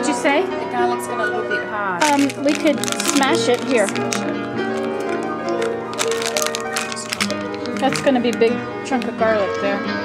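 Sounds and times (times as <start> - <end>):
classical piano music: 0.0 - 10.0.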